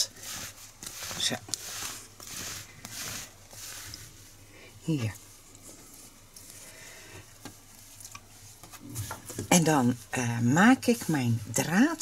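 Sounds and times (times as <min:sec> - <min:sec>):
yarn scarf rustling on wood: 0:00.0 - 0:10.2.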